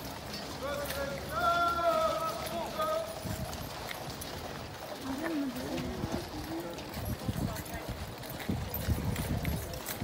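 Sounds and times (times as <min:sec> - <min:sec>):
hooves clip-clopping on gravel: 0:00.0 - 0:10.0
voices: 0:00.0 - 0:10.0.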